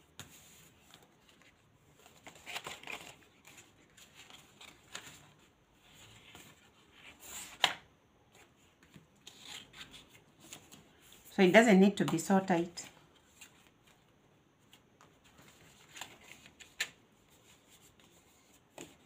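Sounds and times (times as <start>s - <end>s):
card rustling and scraping: 0.2s - 7.8s, 8.4s - 11.2s.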